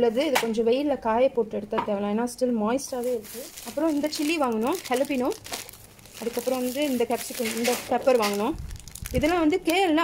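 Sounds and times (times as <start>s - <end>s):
person talking: 0.0s - 5.4s, 6.2s - 10.0s
plastic bags crinkling: 2.8s - 10.0s.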